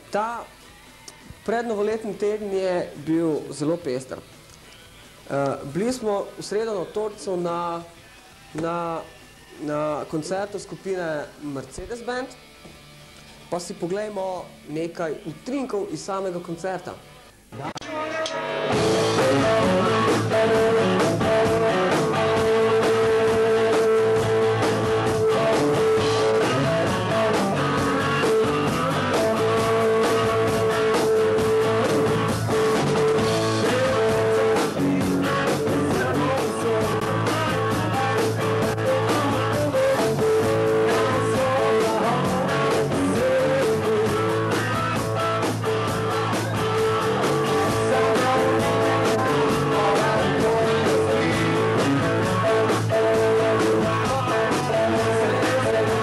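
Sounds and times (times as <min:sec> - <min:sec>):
rock band playing live: 0:17.8 - 0:56.0.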